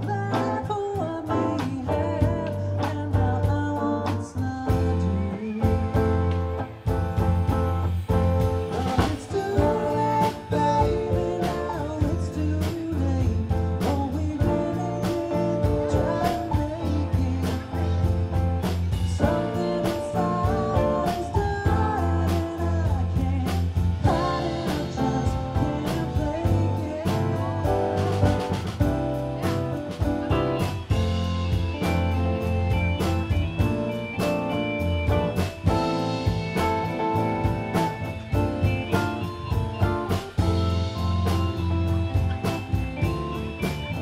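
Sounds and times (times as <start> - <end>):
live rock band playing: 0.0 - 44.0.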